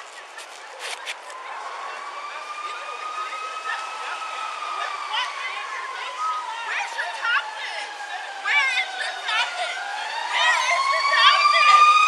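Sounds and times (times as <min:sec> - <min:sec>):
faint voices: 0:00.0 - 0:12.0
emergency siren wailing: 0:00.8 - 0:12.0.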